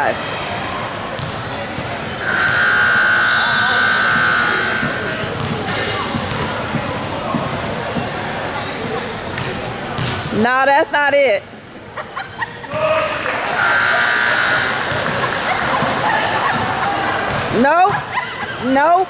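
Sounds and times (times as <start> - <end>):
basketball bouncing: 1.2 - 1.9, 4.1 - 8.2, 8.8 - 10.4, 14.8 - 18.0
scoreboard buzzer: 2.2 - 5.2, 13.6 - 15.0.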